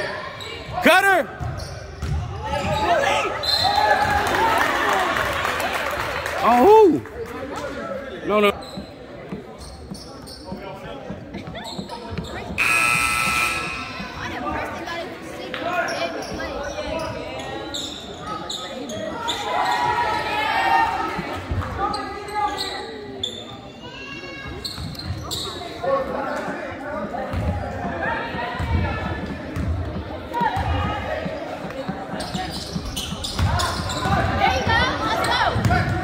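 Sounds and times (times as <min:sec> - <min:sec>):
crowd and player voices: 0:00.0 - 0:36.0
basketball bouncing on wooden court: 0:01.4 - 0:02.2
referee whistle blast: 0:12.6 - 0:14.0.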